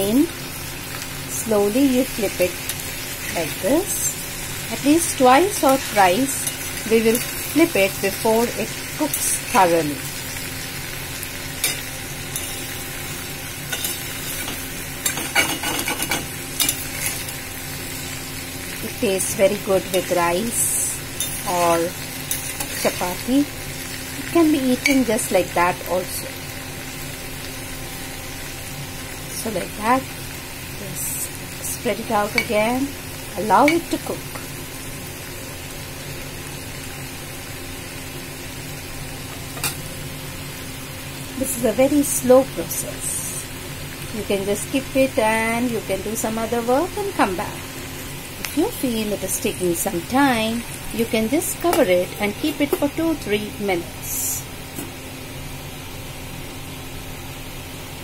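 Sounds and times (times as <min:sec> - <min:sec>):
vegetables sizzling in oil: 0:00.0 - 0:58.0.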